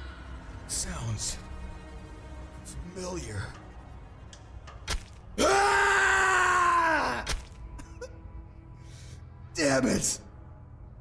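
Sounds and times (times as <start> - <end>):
man crying out: 5.4 - 7.3.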